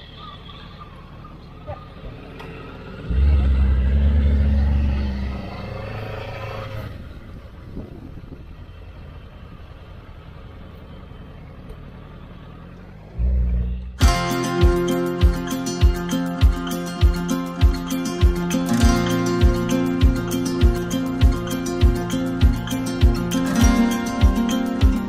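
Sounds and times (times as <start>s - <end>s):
motorcycle engines rumbling: 0.0s - 25.0s.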